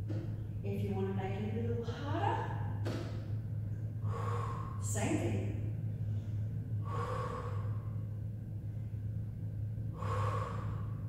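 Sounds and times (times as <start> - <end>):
steady low hum: 0.0 - 11.0
woman breathing with effort: 3.4 - 5.0, 5.6 - 11.0.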